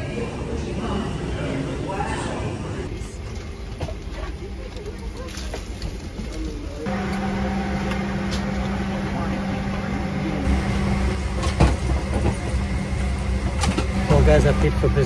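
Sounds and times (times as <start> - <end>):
airliner cabin hum: 0.0 - 15.0.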